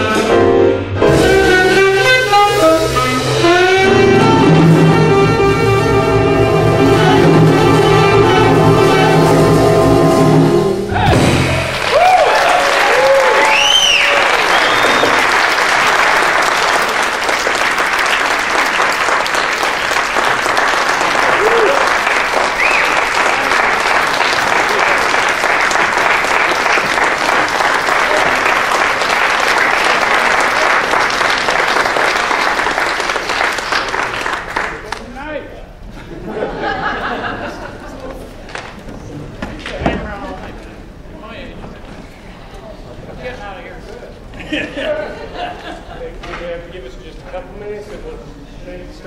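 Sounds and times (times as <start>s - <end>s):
jazz band note: 0.0s - 11.8s
audience cheering: 10.9s - 33.2s
audience applauding: 11.4s - 35.1s.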